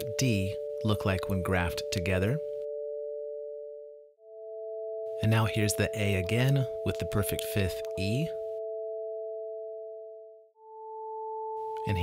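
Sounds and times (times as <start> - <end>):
sine-wave tones: 0.0 - 12.0.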